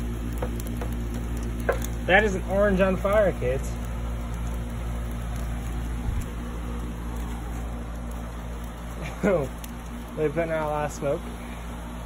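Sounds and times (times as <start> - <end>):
air conditioner humming: 0.0 - 12.0.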